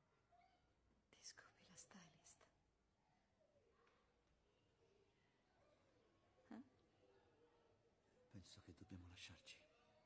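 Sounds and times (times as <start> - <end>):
faint whispered speech: 1.1 - 2.6, 5.4 - 10.0.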